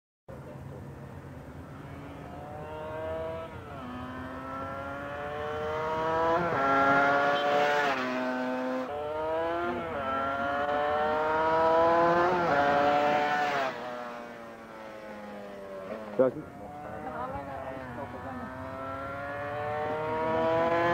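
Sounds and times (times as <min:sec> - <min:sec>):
motorcycle engine accelerating: 0:01.2 - 0:20.9.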